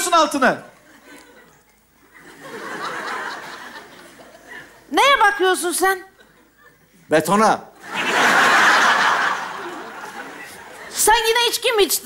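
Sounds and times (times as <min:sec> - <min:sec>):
audience laughing: 0:00.8 - 0:04.8, 0:07.8 - 0:11.2.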